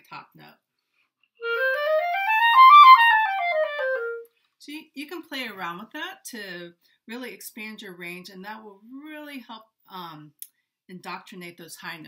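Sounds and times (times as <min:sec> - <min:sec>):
clarinet playing a scale: 0:01.4 - 0:04.3.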